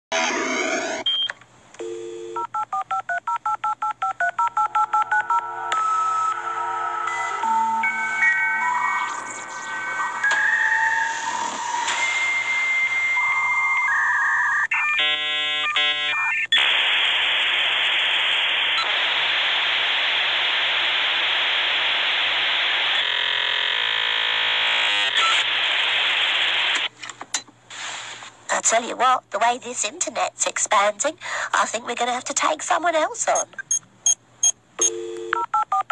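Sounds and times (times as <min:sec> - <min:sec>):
dial-up modem tones: 0:01.0 - 0:06.4, 0:25.0 - 0:25.6, 0:34.8 - 0:35.9
static hiss: 0:16.6 - 0:27.0, 0:27.7 - 0:28.5.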